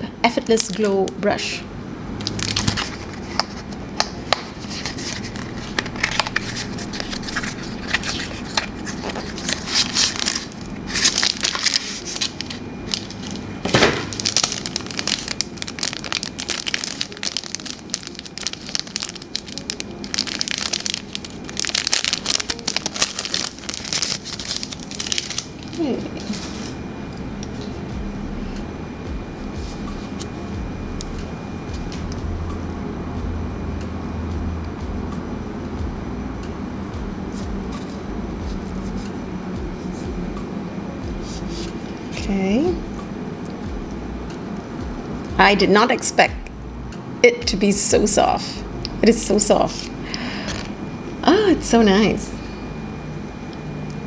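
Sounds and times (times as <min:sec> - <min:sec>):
low room hum: 0:00.0 - 0:54.0
plastic packaging crinkling: 0:02.2 - 0:03.7, 0:04.5 - 0:26.8.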